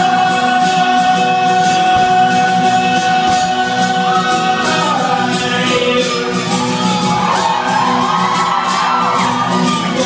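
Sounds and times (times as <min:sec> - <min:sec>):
man singing: 0:00.0 - 0:07.8
acoustic guitar strummed: 0:00.0 - 0:10.0.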